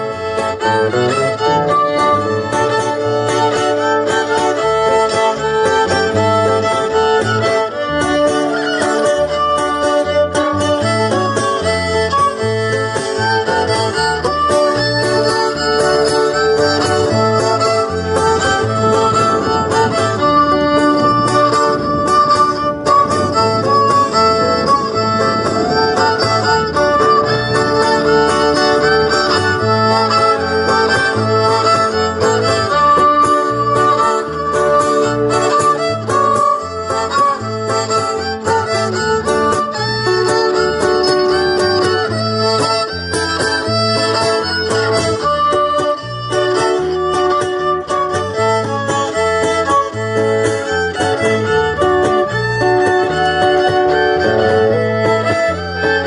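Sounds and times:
fiddle melody: 0.0s - 56.0s
guitar accompaniment: 0.0s - 56.0s.

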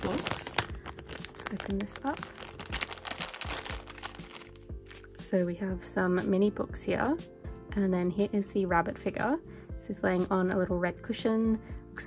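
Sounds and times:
plastic bag crinkling and tearing: 0.0s - 5.1s.

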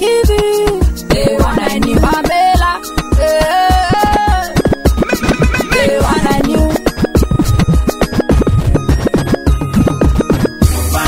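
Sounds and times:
music beat: 0.0s - 11.0s
record scratching: 3.9s - 10.7s.

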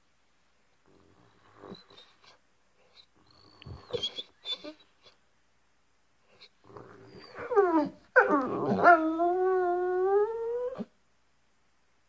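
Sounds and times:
dog howling: 7.1s - 10.9s.

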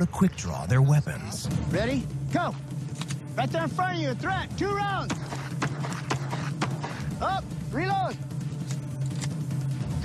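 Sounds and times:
background music with low drone: 0.0s - 10.0s.

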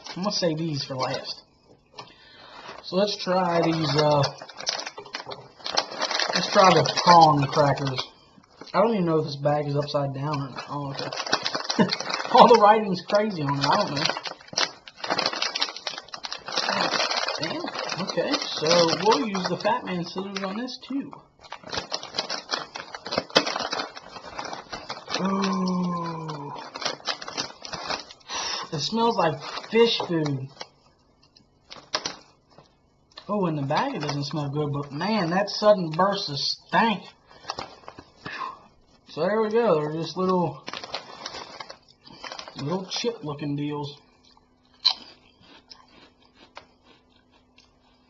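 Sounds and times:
plastic snack bag crackling: 0.0s - 48.0s
crisp chewing crunches: 2.0s - 36.3s, 39.5s - 48.0s.

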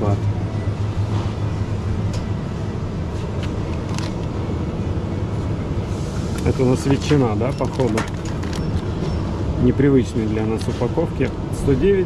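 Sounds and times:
refrigeration hum: 0.0s - 12.0s.

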